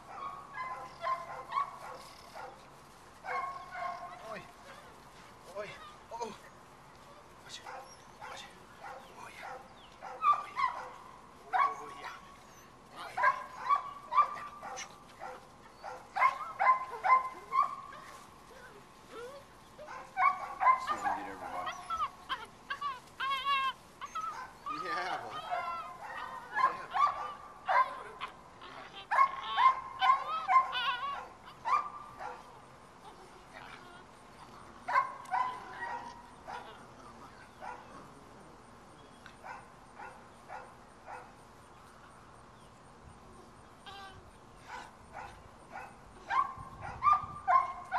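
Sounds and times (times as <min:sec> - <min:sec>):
puppies yipping and barking: 0:00.0 - 0:42.1, 0:43.4 - 0:47.9
puppies whining: 0:03.3 - 0:08.5, 0:11.6 - 0:38.4.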